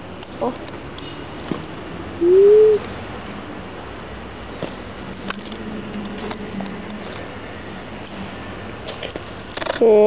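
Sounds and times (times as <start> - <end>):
bird cooing: 2.2 - 2.9.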